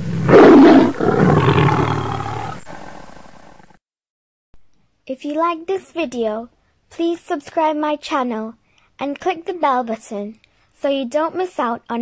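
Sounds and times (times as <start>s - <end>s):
tiger roaring: 0.0s - 3.7s.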